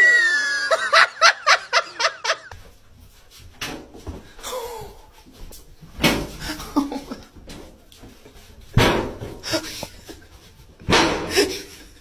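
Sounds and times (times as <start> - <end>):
swinging door banging: 6.0 - 6.7, 8.7 - 9.7, 10.8 - 11.6.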